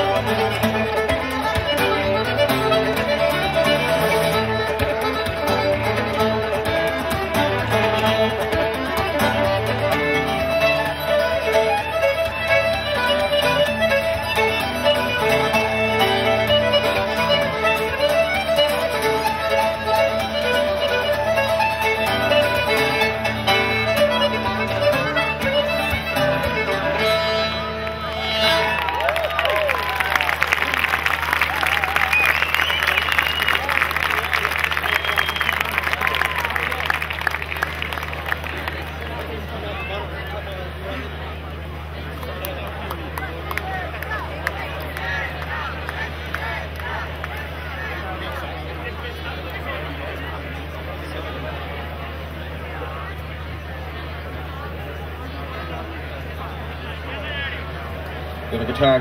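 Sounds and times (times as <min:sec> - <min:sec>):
fiddle accordion and guitar tune: 0:00.0 - 0:29.5
audience applauding: 0:27.8 - 0:40.0, 0:42.1 - 0:48.6
whistles from audience: 0:31.6 - 0:36.7.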